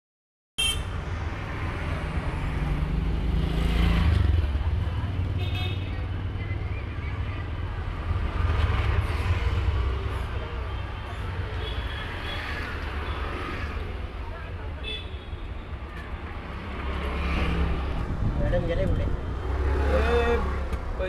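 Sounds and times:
motorcycle and scooter engines: 0.9s - 14.9s, 15.7s - 21.0s
street voices: 0.9s - 21.0s.

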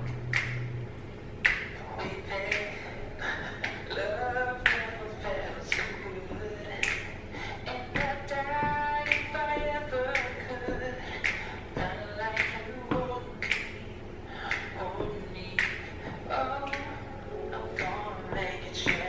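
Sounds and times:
finger snaps: 0.1s - 0.8s, 1.4s - 1.8s, 2.4s - 2.8s, 3.5s - 4.0s, 4.6s - 4.9s, 5.7s - 6.0s, 6.8s - 7.2s, 8.0s - 10.5s, 11.2s - 11.6s, 12.3s - 12.6s, 13.4s - 13.8s, 14.4s - 14.9s, 15.6s - 15.9s, 16.6s - 17.0s, 17.8s - 18.0s
girl singing a cappella: 1.7s - 19.0s.

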